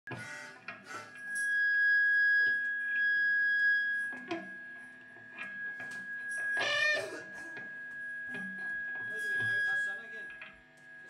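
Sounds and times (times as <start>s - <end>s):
electric guitar sustaining high tone: 0.2s - 11.0s.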